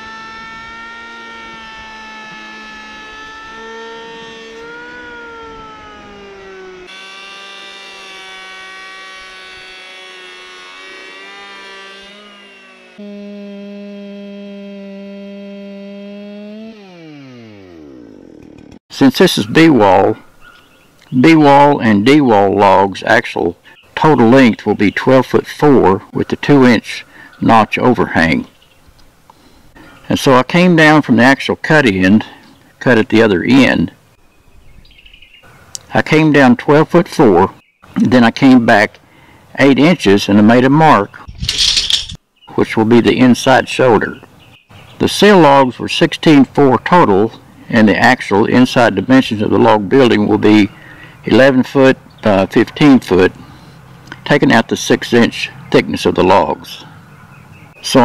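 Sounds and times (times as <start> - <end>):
chainsaw at high revs: 0.0 - 18.8
electric planer whining: 0.0 - 18.8.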